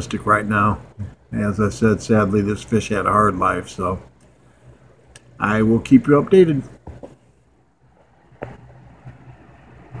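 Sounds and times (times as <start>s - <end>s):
aquarium equipment humming: 0.0s - 10.0s.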